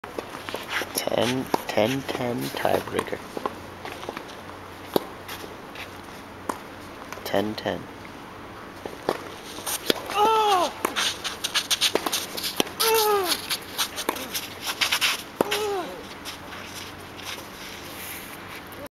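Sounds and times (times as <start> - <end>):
tennis ball hitting racket: 9.0 - 16.0
shoes scuffing on hard court: 9.0 - 18.7
players grunting: 15.4 - 16.1.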